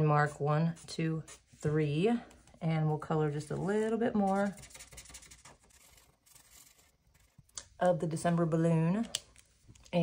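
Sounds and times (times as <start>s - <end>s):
marker scratching on paper: 3.5s - 7.5s.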